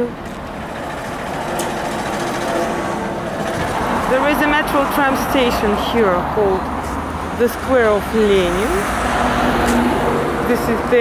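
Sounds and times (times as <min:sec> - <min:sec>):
motor vehicle passing: 0:00.3 - 0:11.0.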